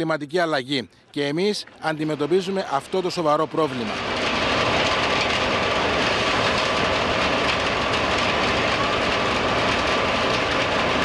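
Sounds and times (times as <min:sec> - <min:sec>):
heavy machinery drone: 0:01.9 - 0:11.0.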